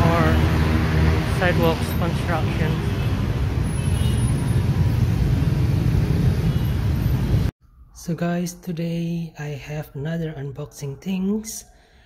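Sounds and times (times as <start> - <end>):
motorcycle and car traffic: 0.0 - 7.5.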